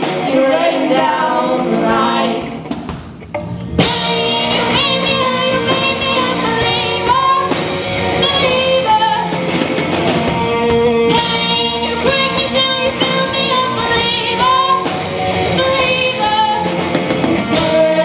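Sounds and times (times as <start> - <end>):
woman singing lead vocals: 0.0 - 9.6, 11.1 - 18.0
rock band playing: 0.0 - 18.0.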